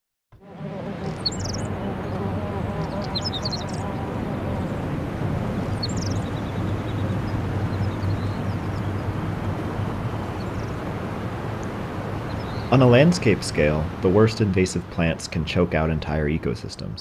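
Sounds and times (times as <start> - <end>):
low outdoor rumble: 0.8 - 17.0
faint bird chirps: 1.0 - 4.0, 5.6 - 9.1, 10.2 - 10.8, 12.3 - 12.8.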